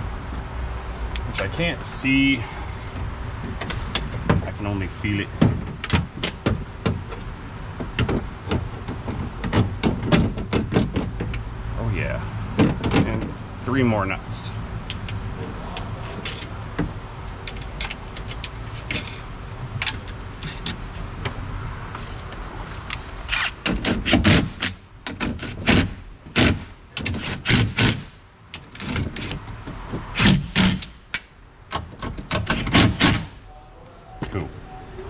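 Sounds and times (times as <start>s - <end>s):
cordless impact wrench: 30.2s - 31.0s.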